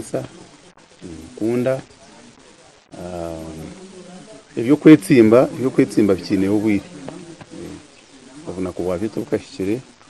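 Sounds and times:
man speaking: 0:00.0 - 0:02.3, 0:02.9 - 0:09.9.

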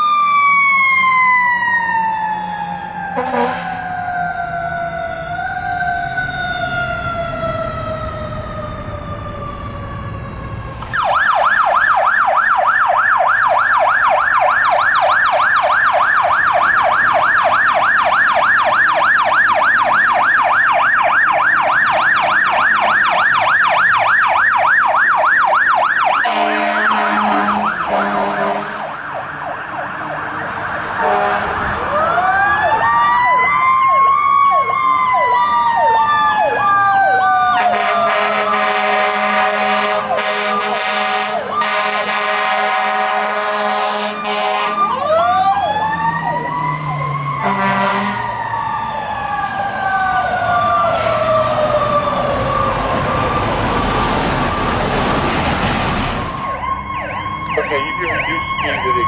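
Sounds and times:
electronic siren yelping: 0:00.0 - 0:54.8, 0:56.2 - 0:59.0
air horn blasts: 0:03.2 - 0:03.7, 0:26.2 - 0:29.0, 0:31.0 - 0:31.6, 0:37.6 - 0:44.9, 0:47.4 - 0:48.3.

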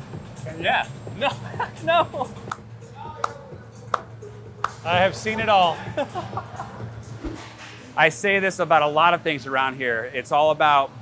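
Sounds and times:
sharp handclaps: 0:02.5 - 0:04.8.

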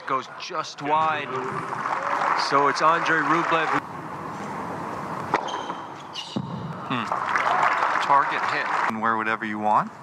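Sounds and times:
quiet indoor arena hush: 0:00.0 - 0:10.0.

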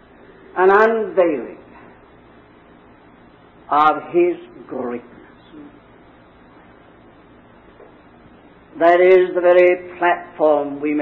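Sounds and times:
recording hiss: 0:00.0 - 0:11.0.

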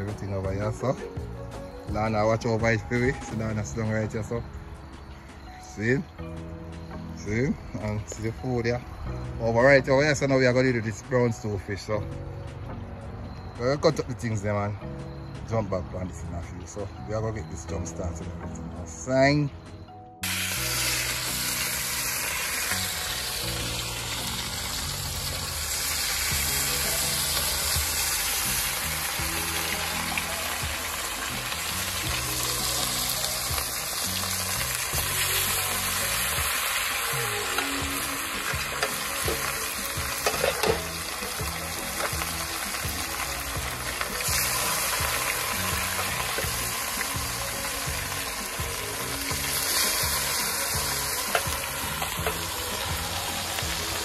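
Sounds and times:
fish sizzling in hot oil: 0:20.2 - 0:54.0.

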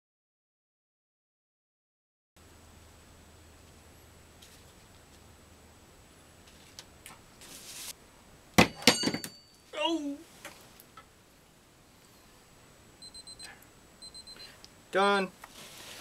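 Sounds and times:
kitchen timer beeping: 0:13.0 - 0:14.4.

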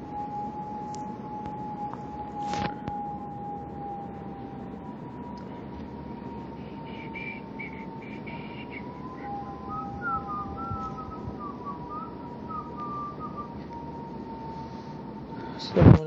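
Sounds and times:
faint wavering whistle: 0:00.0 - 0:15.8
high-pitched whine: 0:00.0 - 0:16.0.

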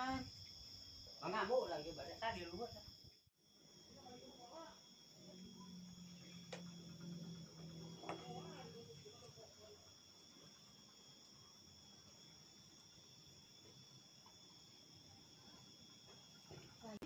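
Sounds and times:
high-pitched insect drone: 0:00.0 - 0:17.0.

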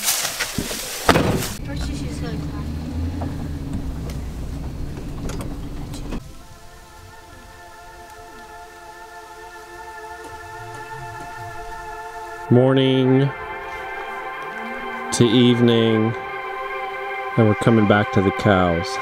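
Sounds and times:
vehicle engine running: 0:01.4 - 0:08.6
music of long held tones: 0:01.6 - 0:19.0.

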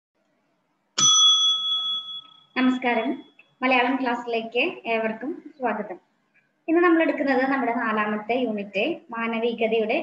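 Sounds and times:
bell-like ding: 0:01.0 - 0:03.4.

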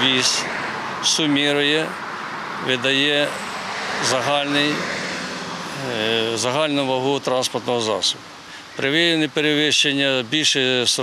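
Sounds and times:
man speaking: 0:00.0 - 0:02.0, 0:02.6 - 0:03.4, 0:04.0 - 0:04.9, 0:05.7 - 0:11.0
outdoor background noise: 0:00.0 - 0:11.0.

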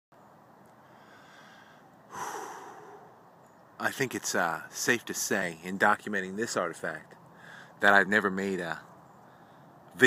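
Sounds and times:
man's snort-like exhale: 0:02.1 - 0:03.2.

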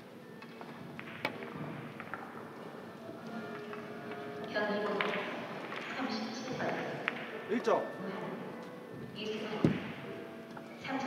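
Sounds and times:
billiard balls clicking: 0:00.4 - 0:06.0, 0:06.6 - 0:07.7.

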